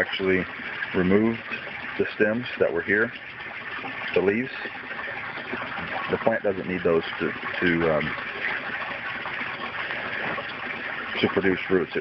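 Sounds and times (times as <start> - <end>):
running water hiss: 0.0 - 12.0.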